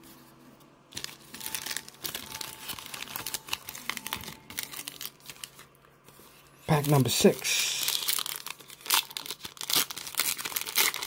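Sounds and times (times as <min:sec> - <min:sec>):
plastic foil wrapper crinkling: 0:00.9 - 0:11.0.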